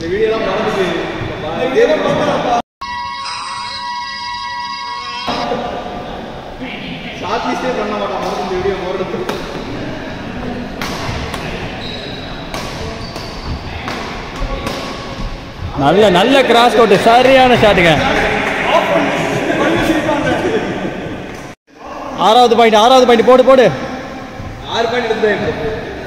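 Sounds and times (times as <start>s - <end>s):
electronic tones: 2.8s - 5.5s
players' voices: 5.3s - 26.0s
racket striking shuttlecock: 10.8s - 11.7s, 12.5s - 15.4s.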